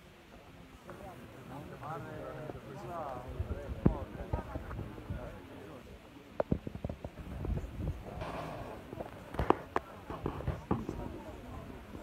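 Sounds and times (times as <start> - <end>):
faint crowd chatter: 0.0 - 12.0.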